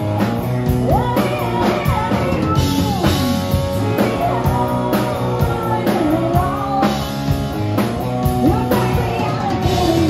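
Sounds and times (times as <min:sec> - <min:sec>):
woman singing: 0:00.0 - 0:07.3, 0:08.2 - 0:10.0
drum kit beat: 0:00.0 - 0:10.0
electric guitar: 0:00.0 - 0:10.0.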